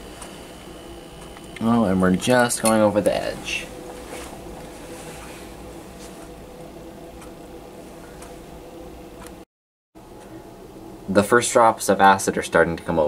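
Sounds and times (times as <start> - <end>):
faint hiss and low hum: 0.0 - 9.4, 10.0 - 13.0.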